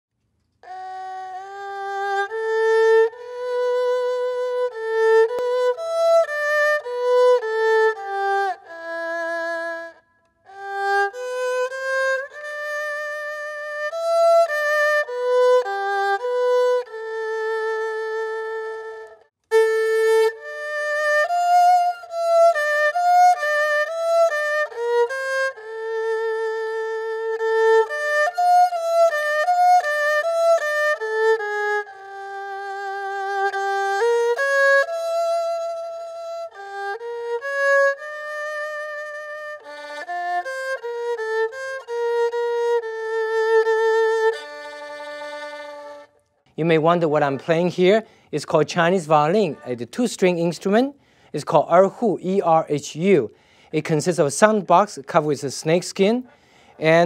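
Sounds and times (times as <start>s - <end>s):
bowed fiddle slow melody: 0.4s - 57.0s.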